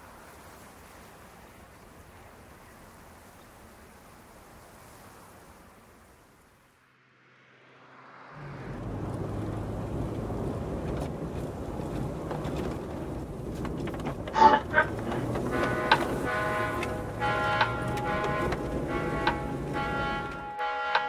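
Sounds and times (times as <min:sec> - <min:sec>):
road traffic noise: 0:00.0 - 0:21.0
instrumental music: 0:15.1 - 0:21.0.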